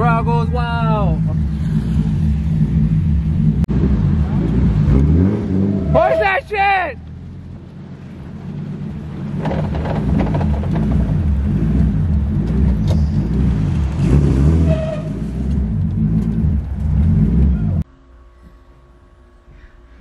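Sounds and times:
car engine rumbling: 0.0s - 20.0s.

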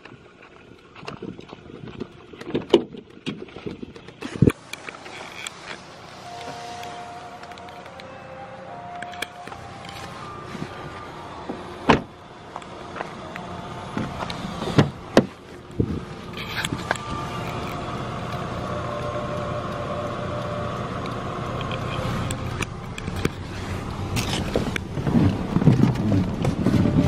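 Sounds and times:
steady low hum: 4.3s - 27.0s.

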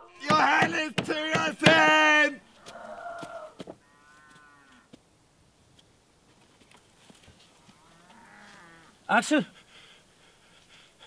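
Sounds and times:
knocks on wooden door: 0.3s - 1.9s
drawn-out moo-like calls: 7.5s - 9.2s.

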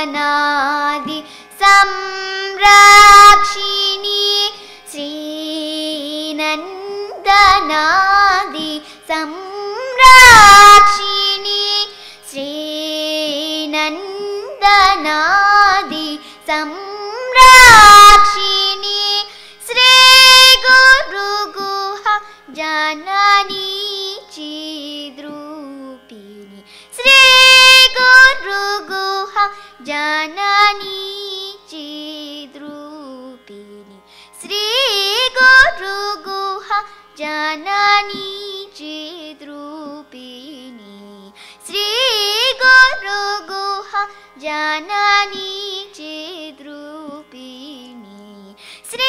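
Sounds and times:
girl singing classical song: 0.0s - 49.0s.

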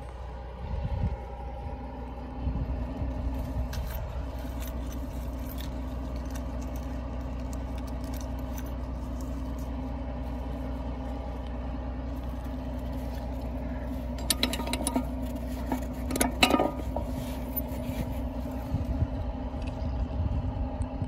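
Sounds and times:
vehicle engine droning: 0.0s - 21.0s
clicks and rattles: 14.0s - 17.8s.

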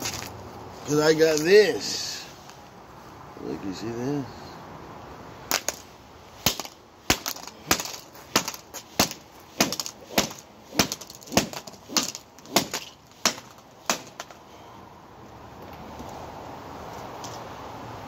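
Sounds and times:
hammer smashing phone on concrete: 5.5s - 5.8s, 6.4s - 14.4s.

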